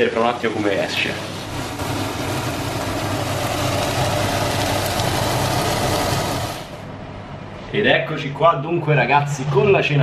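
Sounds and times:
eggs sizzling in a pan: 0:00.0 - 0:06.8.

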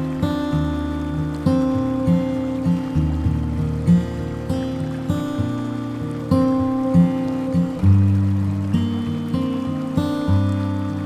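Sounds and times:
acoustic guitar music: 0:00.0 - 0:11.0.

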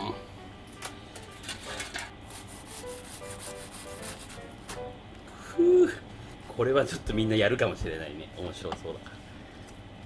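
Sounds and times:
faint background music: 0:00.0 - 0:09.0
knife sawing crunchy crust: 0:02.3 - 0:04.4.

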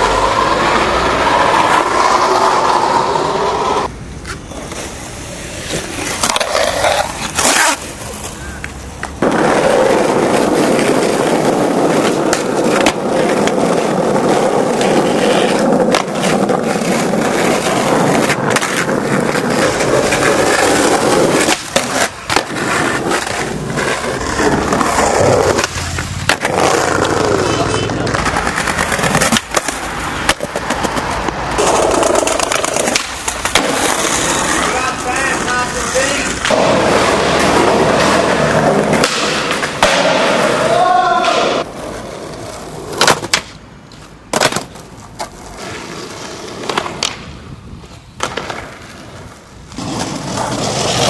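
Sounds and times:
skateboard wheels rolling on asphalt: 0:00.0 - 0:51.0
skateboard wooden clacks: 0:05.7 - 0:35.4, 0:36.3 - 0:40.5, 0:42.3 - 0:51.0.

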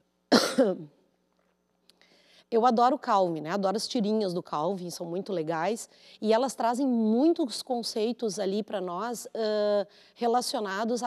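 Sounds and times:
woman coughing into microphone: 0:00.3 - 0:01.0.

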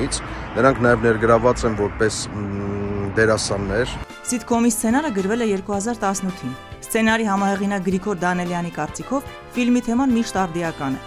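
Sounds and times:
man talking: 0:00.0 - 0:04.0
low rumble of street traffic: 0:00.0 - 0:11.0.

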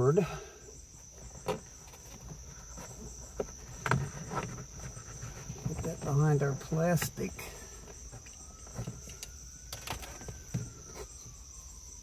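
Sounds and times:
insect chirr: 0:00.0 - 0:12.0.

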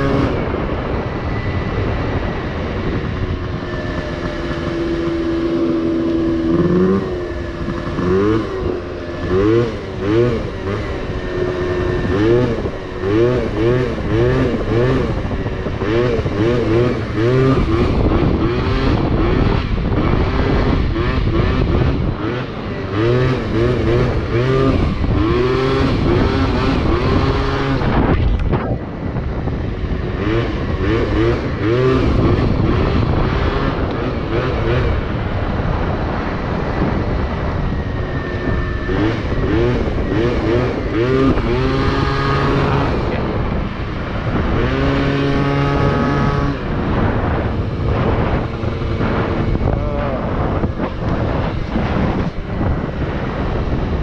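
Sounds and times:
scooter engine revving: 0:00.0 - 0:54.0.

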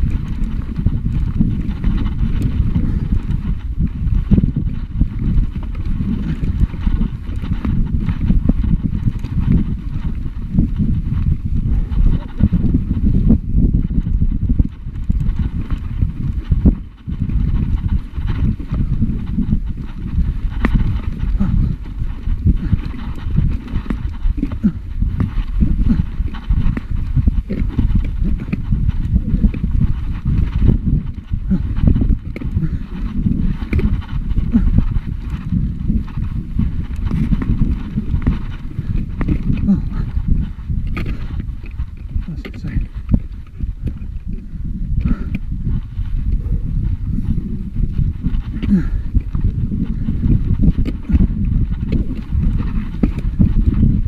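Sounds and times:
bike clattering over stones: 0:15.0 - 0:45.7.

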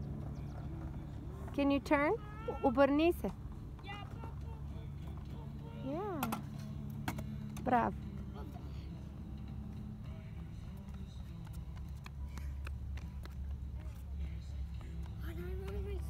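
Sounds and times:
skateboard wheels rolling on concrete: 0:00.0 - 0:16.0.

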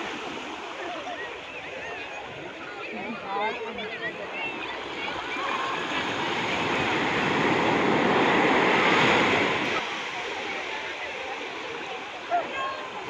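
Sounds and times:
small sea waves washing in: 0:00.0 - 0:13.0.

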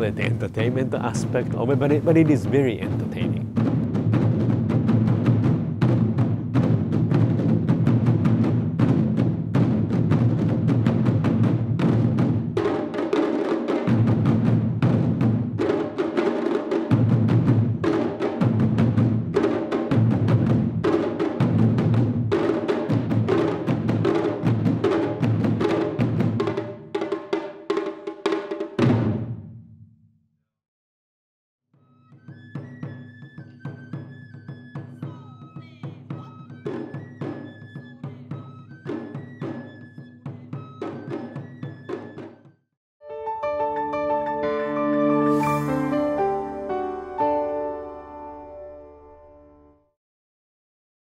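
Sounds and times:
deep booming drum: 0:00.0 - 0:12.8, 0:13.9 - 0:15.8
taiko drums beating: 0:00.0 - 0:29.6, 0:32.3 - 0:42.4.

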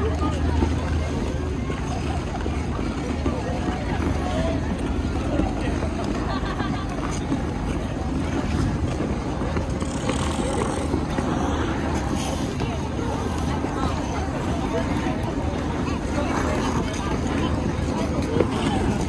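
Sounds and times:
indistinct chatter: 0:00.0 - 0:19.0.

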